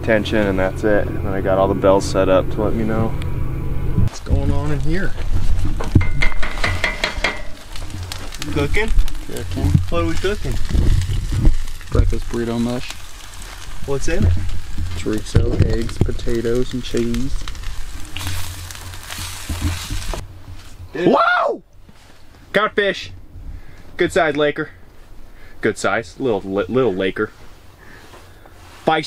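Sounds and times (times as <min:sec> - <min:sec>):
food sizzling in a skillet: 0:06.1 - 0:20.2.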